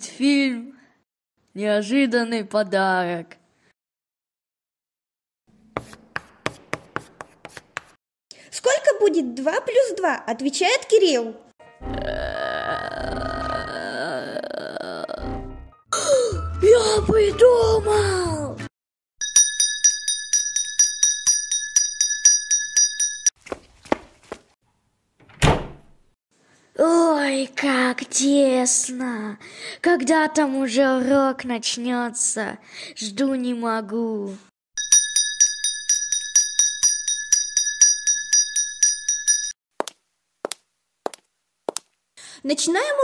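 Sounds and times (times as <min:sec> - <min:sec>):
electric school bell ringing: 0:34.8 - 0:39.6.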